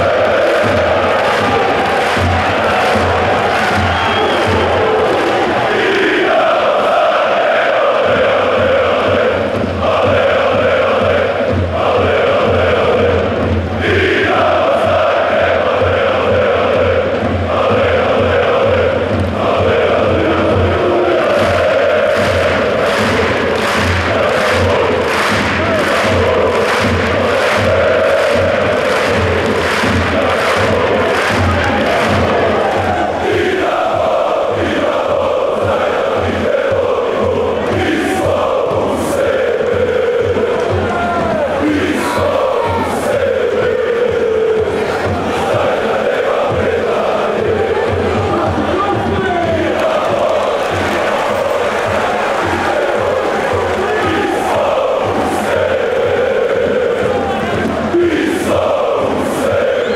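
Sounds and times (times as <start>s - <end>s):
crowd singing a chant: 0.0s - 59.9s
rhythmic clapping: 0.0s - 59.9s.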